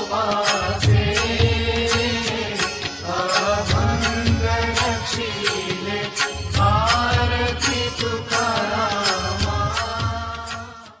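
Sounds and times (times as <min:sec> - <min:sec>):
sharp percussion strikes: 0:00.0 - 0:10.8
devotional hymn singing: 0:00.0 - 0:11.0.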